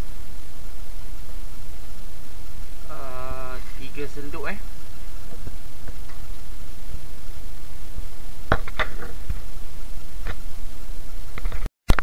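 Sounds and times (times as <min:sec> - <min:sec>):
pot boiling with hiss: 0:00.0 - 0:12.0.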